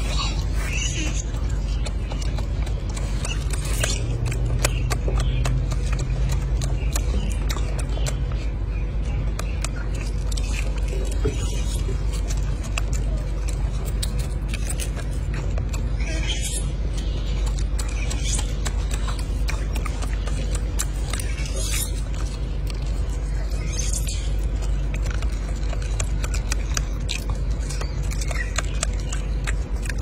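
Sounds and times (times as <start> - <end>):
eggshell crackling and chewing: 0.0 - 30.0
steady low rumble: 0.0 - 30.0.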